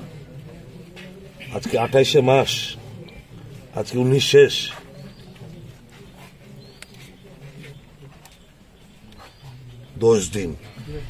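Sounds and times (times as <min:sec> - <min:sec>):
faint background murmur: 0:00.0 - 0:11.0.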